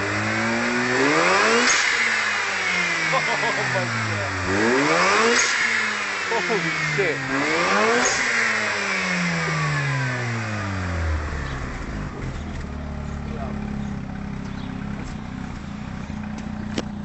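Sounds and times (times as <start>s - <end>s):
rotary engine revving and idling: 0.0s - 17.0s.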